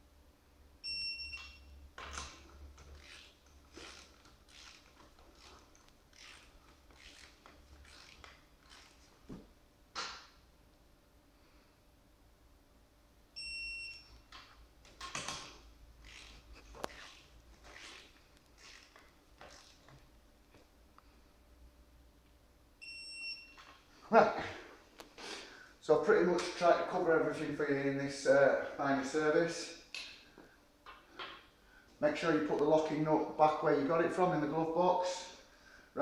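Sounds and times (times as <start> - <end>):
torque wrench high beep: 0.8 - 1.8, 13.4 - 14.2, 22.8 - 23.7.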